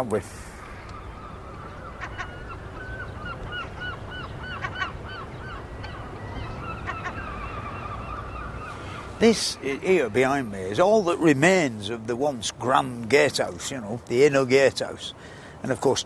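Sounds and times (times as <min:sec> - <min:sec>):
bird honking: 0:01.0 - 0:09.3.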